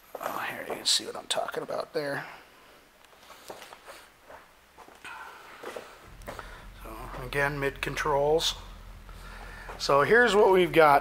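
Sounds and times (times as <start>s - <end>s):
faint footsteps: 3.1s - 10.5s.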